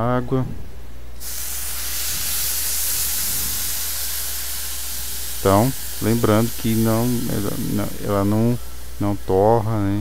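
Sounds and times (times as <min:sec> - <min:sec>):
water hissing in hot pan: 0:01.2 - 0:09.6.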